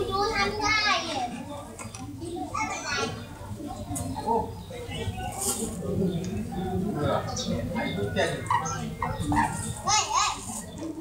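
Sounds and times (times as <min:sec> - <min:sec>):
children's voices: 0:00.0 - 0:05.6, 0:09.0 - 0:11.0.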